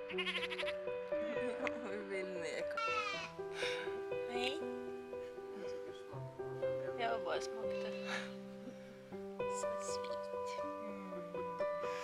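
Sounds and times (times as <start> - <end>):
lamb bleating: 0.1 - 0.8, 2.8 - 3.3.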